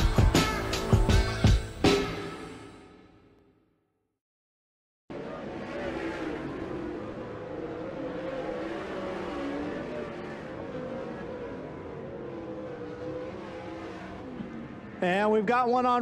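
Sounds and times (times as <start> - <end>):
race car engines: 5.1 - 16.0.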